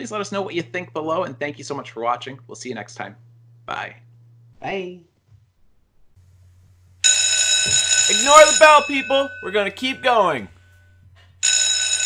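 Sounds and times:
electric school bell ringing: 7.0s - 12.0s.

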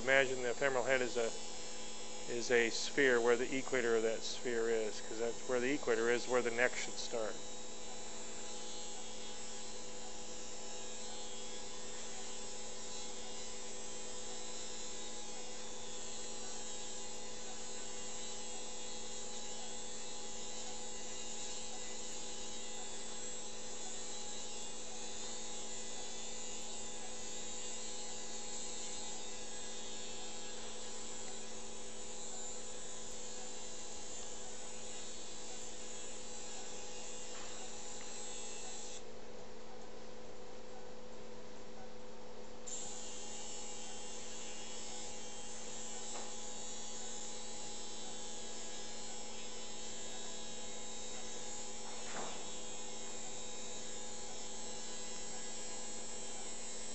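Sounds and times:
surgical burr motor whine: 0.0s - 39.0s, 42.7s - 56.9s.

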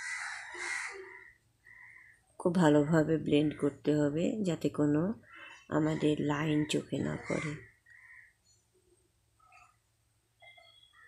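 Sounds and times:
crow cawing: 0.0s - 2.2s, 5.2s - 6.0s, 7.2s - 8.4s.

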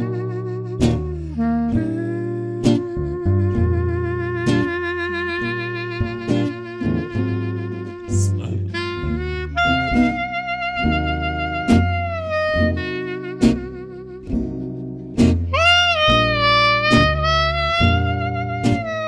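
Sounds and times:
acoustic guitar: 0.0s - 19.0s
jazz clarinet with vibrato: 0.0s - 19.0s
plucked upright bass: 0.0s - 19.0s.

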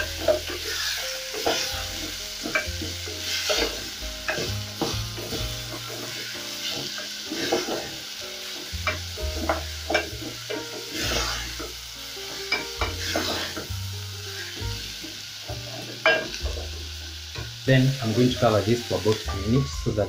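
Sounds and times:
wooden spoon scraping a pot: 0.0s - 8.0s, 8.8s - 13.7s
meat and onions sizzling: 0.0s - 20.0s.

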